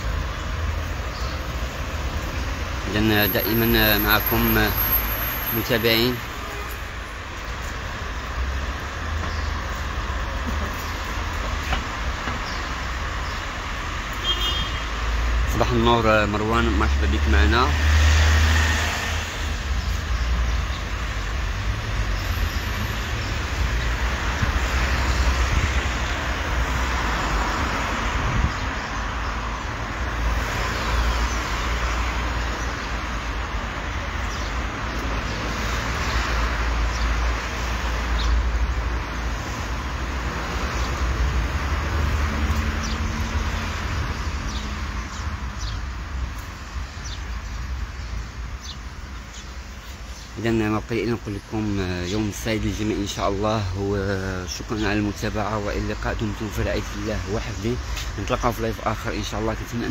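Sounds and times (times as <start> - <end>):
cars passing by: 0.0 - 59.9
low traffic rumble: 0.0 - 59.9.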